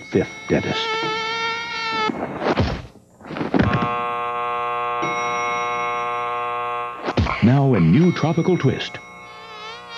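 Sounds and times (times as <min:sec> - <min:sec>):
game-show buzzer tone: 0:00.0 - 0:02.8, 0:03.6 - 0:09.9.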